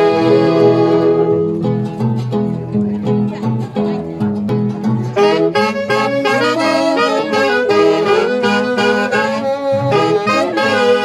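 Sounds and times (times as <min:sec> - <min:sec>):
saxophones playing in harmony: 0:00.0 - 0:01.6, 0:05.2 - 0:11.0.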